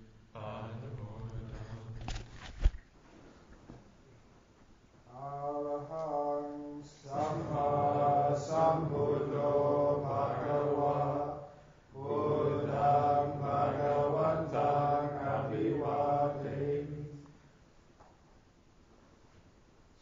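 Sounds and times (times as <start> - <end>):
voices chanting in unison: 0.4 - 1.4, 5.1 - 17.4.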